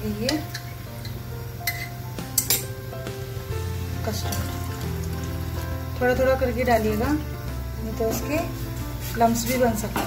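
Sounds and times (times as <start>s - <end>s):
background music: 0.0s - 10.0s
kitchen utensils clinking: 0.2s - 2.7s, 4.1s - 4.8s.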